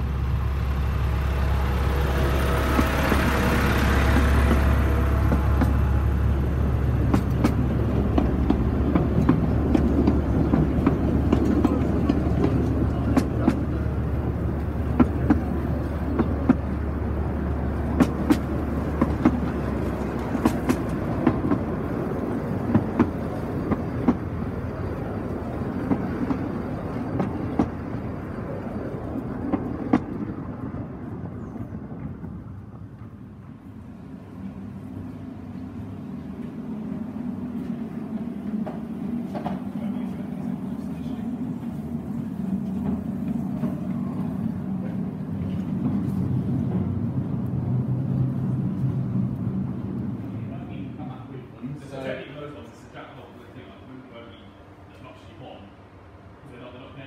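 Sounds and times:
wheels clicking over rail joints: 0.0s - 33.8s, 37.2s - 50.4s
wheels rumbling on rail: 0.0s - 57.0s.

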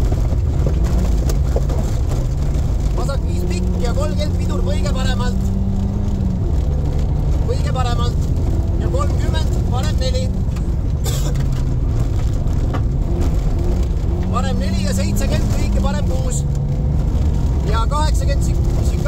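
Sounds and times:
car engine running hard: 0.0s - 19.0s
tyres rumbling on gravel: 0.0s - 19.0s
person speaking: 14.3s - 16.5s.

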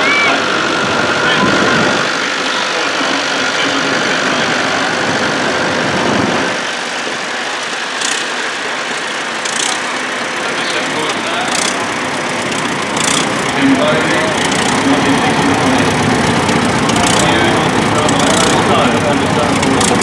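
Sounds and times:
murmur of crowd voices: 0.0s - 20.0s
tractor diesel engine passing: 0.0s - 20.0s.

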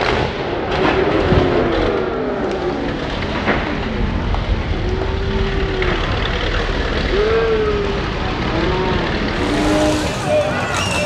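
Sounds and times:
spectators shouting: 9.4s - 11.0s.

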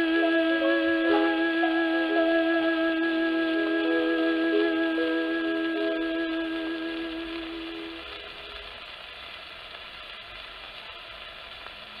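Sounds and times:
held note from old record: 0.0s - 8.8s
record surface hiss and crackle: 0.0s - 12.0s.

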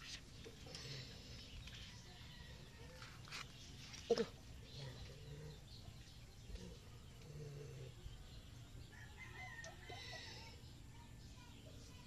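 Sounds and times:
low steady background noise: 0.0s - 12.0s
rooster crowing: 8.9s - 10.5s.

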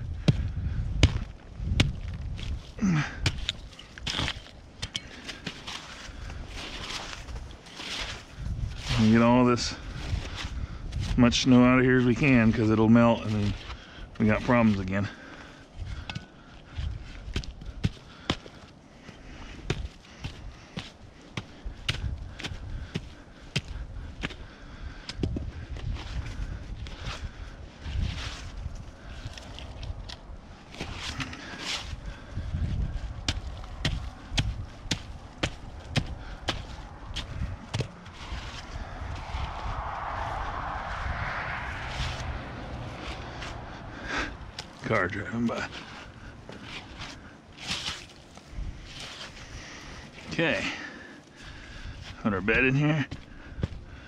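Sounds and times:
gloved hands scraping wet soil: 33.3s - 38.8s
vehicle passing: 35.2s - 46.4s.

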